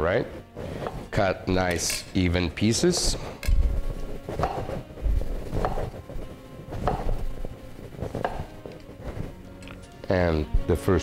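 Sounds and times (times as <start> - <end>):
faint background music: 0.0 - 11.0
knife slicing orange: 4.3 - 4.9, 5.5 - 6.0, 6.8 - 7.4, 8.0 - 9.8
knife knocking on wooden board: 8.2 - 8.5.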